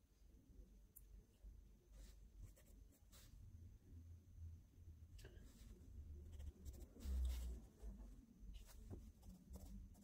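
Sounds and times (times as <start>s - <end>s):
pencil scratching on paper: 2.0s - 3.4s, 5.5s - 7.8s, 8.6s - 10.0s.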